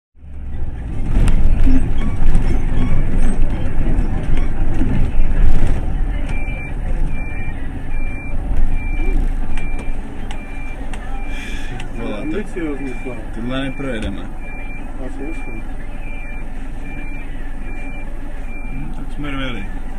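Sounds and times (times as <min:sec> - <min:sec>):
bus engine and road noise: 0:00.2 - 0:19.9
high electronic beep: 0:06.2 - 0:19.2.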